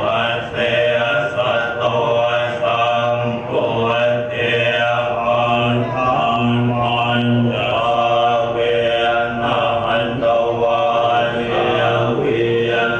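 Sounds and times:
monks chanting in unison: 0.0 - 12.9.

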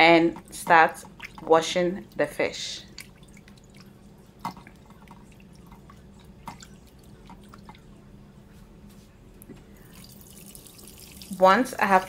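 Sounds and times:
water splashing and dripping: 0.3 - 2.2, 2.8 - 7.9, 9.9 - 11.5.

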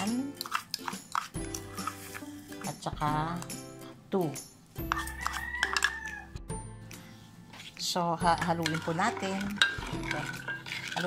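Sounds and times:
rooster crowing: 5.0 - 6.4.

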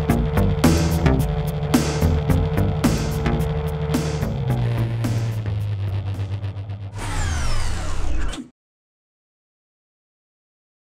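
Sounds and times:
outboard motor droning: 0.0 - 7.8.

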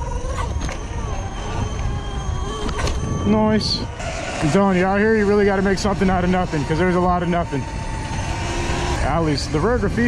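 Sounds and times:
electric motor whine: 0.0 - 10.0
wind rumble on microphone: 0.0 - 10.0.

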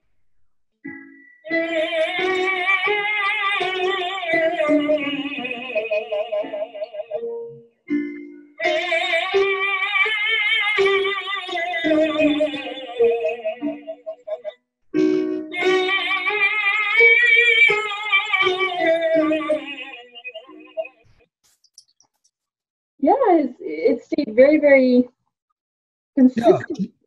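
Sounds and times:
tenor singing with vibrato: 0.9 - 21.0.

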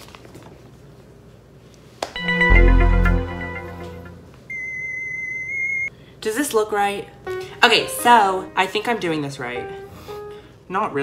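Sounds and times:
background music: 2.2 - 4.4, 7.3 - 10.5
electronic beep: 4.5 - 5.9.

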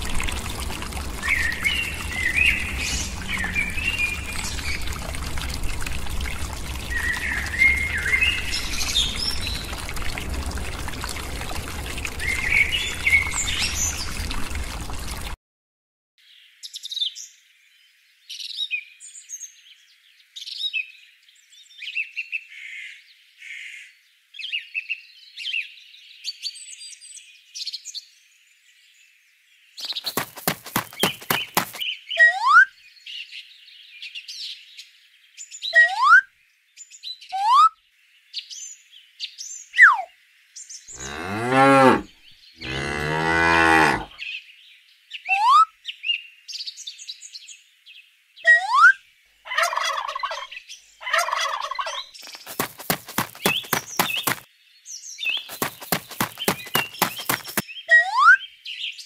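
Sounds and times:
birds chirping and whistling: 1.2 - 4.9, 6.9 - 9.6
cows mooing: 41.0 - 44.1.

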